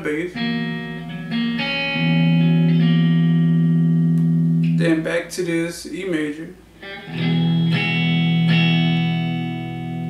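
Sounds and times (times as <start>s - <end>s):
electric guitar chord: 0.3s - 4.8s, 6.8s - 10.0s.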